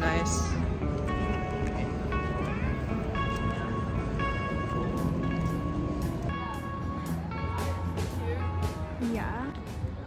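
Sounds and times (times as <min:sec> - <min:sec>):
light percussion: 0:00.0 - 0:10.0.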